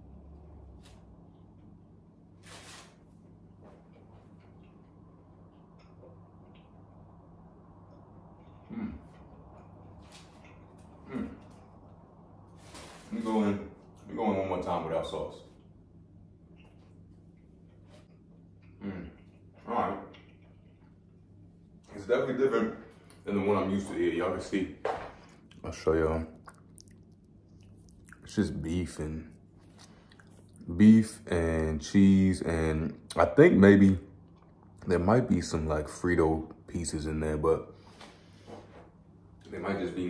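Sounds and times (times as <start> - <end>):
low steady room hum: 0.0 - 40.0
man chewing food: 3.3 - 12.2, 15.5 - 21.9, 25.1 - 28.7, 29.3 - 30.8, 34.1 - 34.8.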